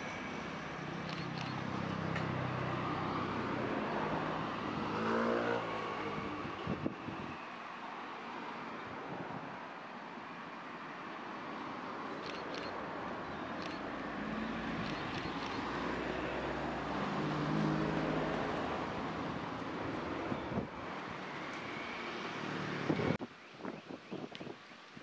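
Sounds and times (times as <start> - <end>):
passing vehicle engine: 1.0 - 7.3, 13.6 - 23.2.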